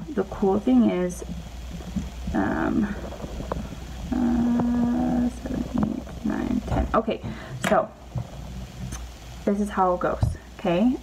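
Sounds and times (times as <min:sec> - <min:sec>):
woman humming hesitation: 0:04.0 - 0:07.2.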